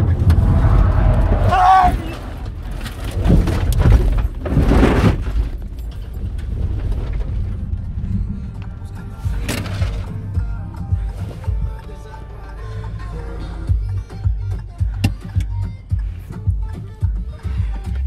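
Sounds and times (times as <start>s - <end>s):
raised voice: 0.0s - 2.5s
car road and engine rumble: 0.0s - 18.0s
loud knocks and rattles: 2.2s - 8.6s
music: 8.0s - 18.0s.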